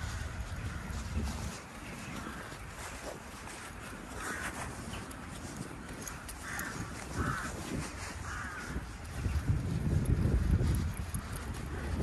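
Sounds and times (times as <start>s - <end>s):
crow cawing: 4.1s - 4.7s, 6.4s - 8.9s.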